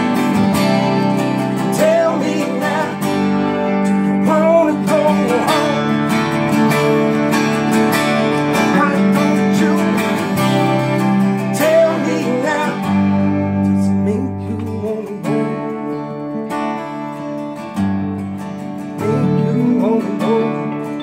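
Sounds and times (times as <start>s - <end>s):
acoustic guitar strumming: 0.0s - 21.0s
electric guitars playing: 0.0s - 21.0s.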